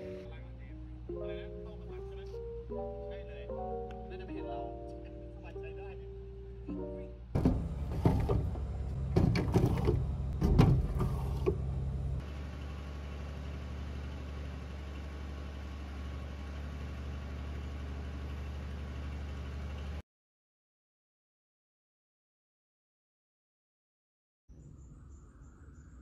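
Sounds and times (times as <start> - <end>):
engine idling: 0.0 - 1.0, 7.4 - 20.0.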